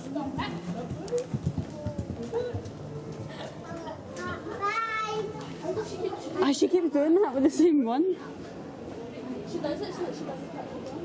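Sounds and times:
people talking and laughing: 0.0 - 11.0
horse hoofbeats on soft ground: 0.1 - 3.4.

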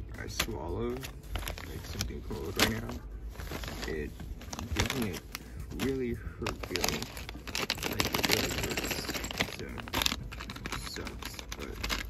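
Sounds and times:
plastic packets crinkling: 0.2 - 12.0.

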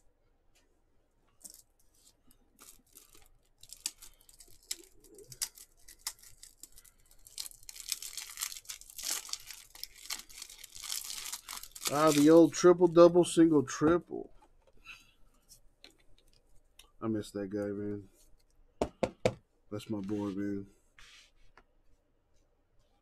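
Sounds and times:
wrapper clicks and rustles: 1.3 - 12.6
plastic wrapping crinkling and tearing: 1.4 - 12.9.

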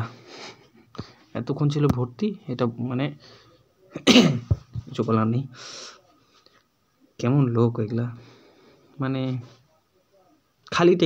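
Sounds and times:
man sneezing: 4.0 - 4.6.

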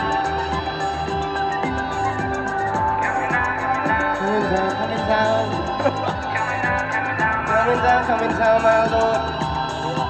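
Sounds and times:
person singing: 3.2 - 10.0.

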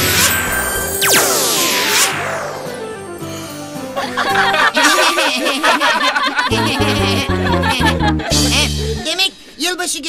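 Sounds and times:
magic spell swoop and chimes: 0.0 - 4.0
background music: 0.0 - 9.1.

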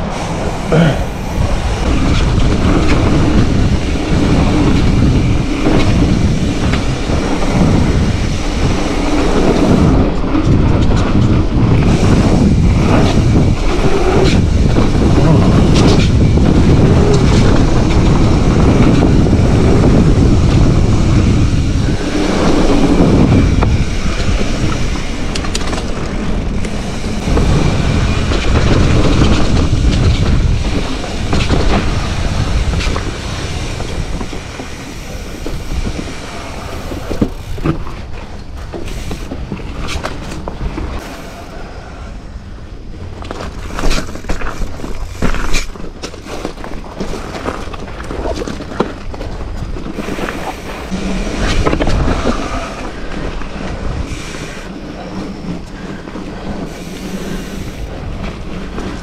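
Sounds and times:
bike rattling over bumps: 0.0 - 41.5, 42.4 - 59.0
wind and tyre noise: 0.0 - 59.0.

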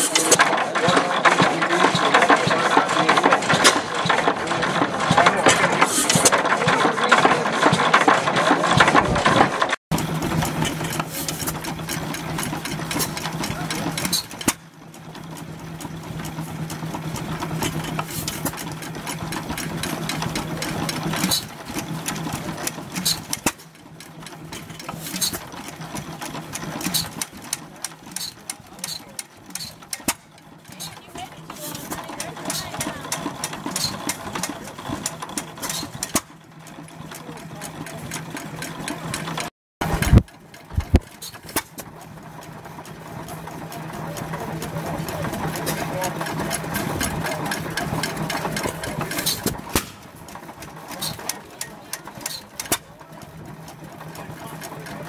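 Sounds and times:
gas engine clattering: 0.0 - 55.0.

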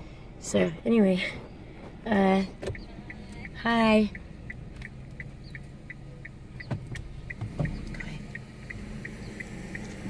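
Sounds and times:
car engine and road hum: 0.0 - 10.0
turn signal ticking: 1.4 - 10.0.

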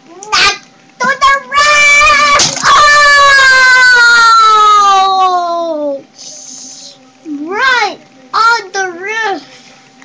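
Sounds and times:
child crying out: 1.6 - 5.6.

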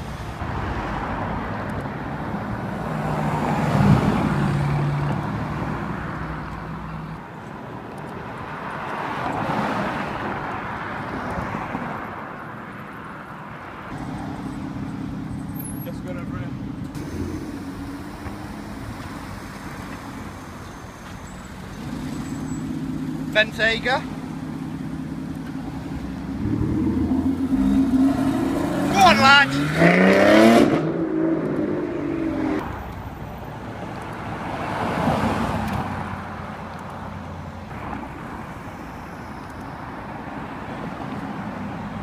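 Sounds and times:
cars driving past: 0.0 - 42.0
low engine hum: 24.0 - 28.9.

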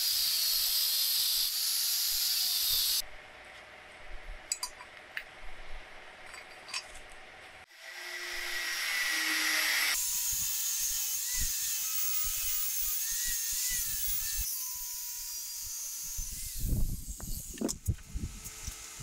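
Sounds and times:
angle grinder grinding metal: 0.0 - 3.0, 7.7 - 19.0.

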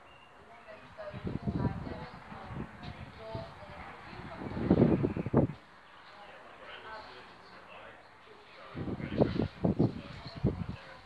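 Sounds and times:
wind buffeting microphone: 0.5 - 6.0, 8.6 - 11.0.

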